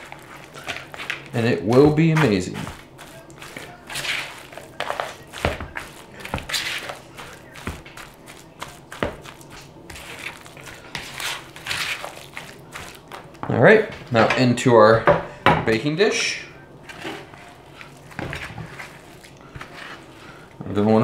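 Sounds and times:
spatula knocking bowl: 0.0s - 13.2s
spatula scraping wet mixture: 0.0s - 14.2s, 16.2s - 21.0s.

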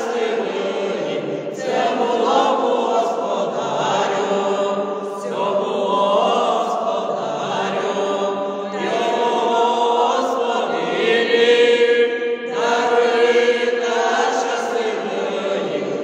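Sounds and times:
mixed choir singing in harmony: 0.0s - 16.0s.

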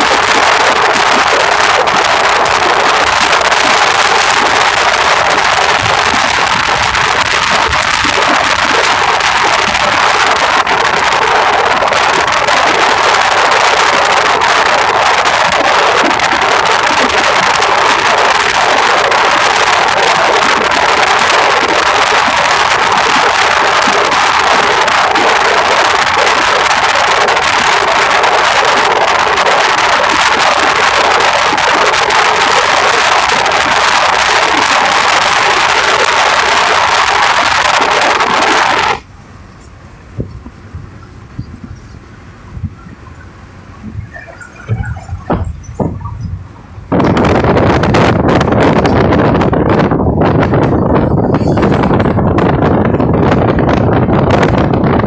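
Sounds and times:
road noise: 0.0s - 55.0s
wind rush: 0.0s - 55.0s.

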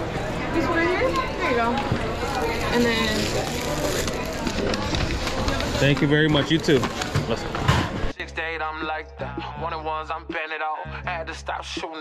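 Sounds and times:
chatter of voices: 0.0s - 8.1s
plastic bag crinkling: 2.1s - 7.1s.

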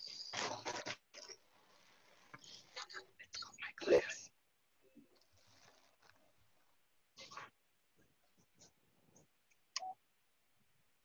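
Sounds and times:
faint whispering: 0.0s - 6.2s.

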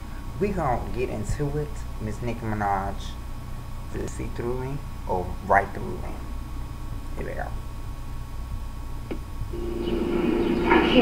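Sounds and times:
low steady hum: 0.0s - 11.0s
steady low tone: 9.4s - 11.0s.

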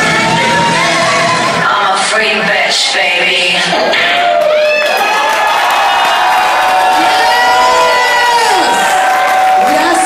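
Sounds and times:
audience cheering and whooping: 0.0s - 1.7s, 3.7s - 10.0s.

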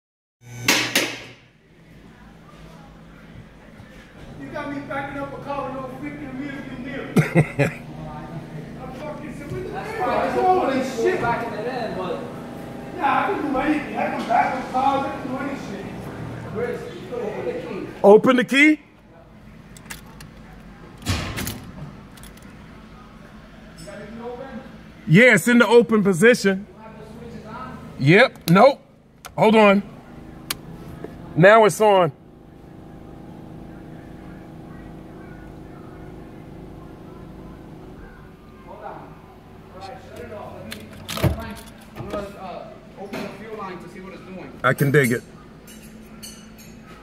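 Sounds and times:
low hum: 0.4s - 18.0s, 26.6s - 43.0s.

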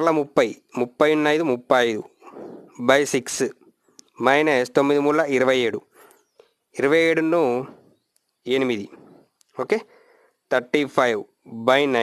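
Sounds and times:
man speaking: 0.0s - 3.6s, 4.2s - 6.0s, 6.8s - 7.8s, 8.5s - 9.9s, 10.5s - 12.0s
soft low rustle: 2.2s - 2.9s, 7.4s - 9.6s.

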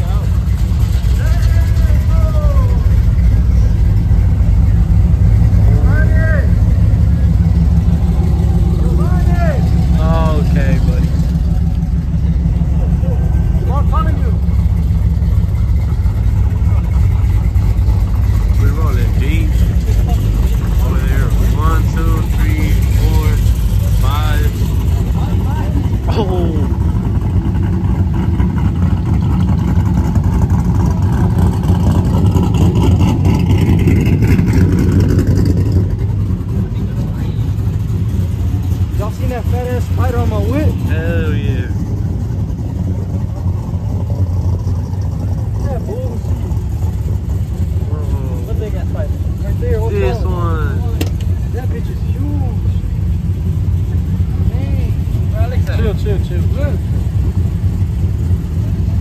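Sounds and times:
pickup truck engines rumbling: 0.0s - 59.0s
people shouting and whooping: 1.1s - 3.1s.

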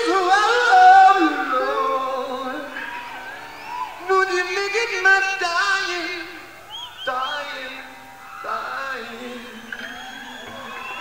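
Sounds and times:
electric slide guitar: 0.0s - 6.7s.

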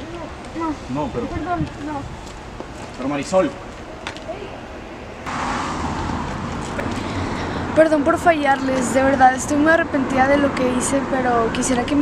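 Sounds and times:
street traffic rushing: 3.6s - 12.0s.

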